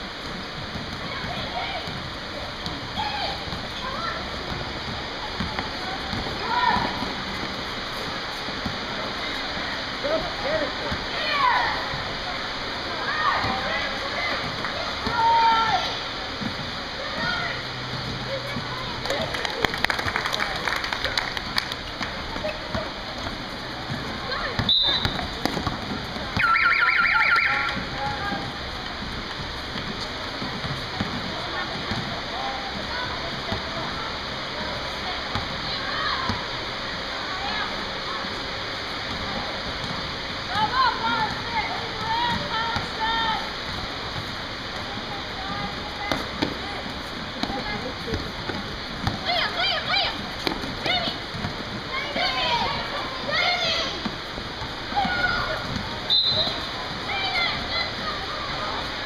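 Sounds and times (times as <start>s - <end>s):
sneakers squeaking on court: 21.8s - 26.6s
hubbub of voices in a hall: 27.2s - 59.0s.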